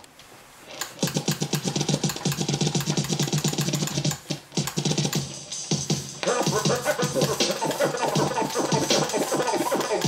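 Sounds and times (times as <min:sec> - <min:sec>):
vinyl record scratching: 0:00.6 - 0:10.0.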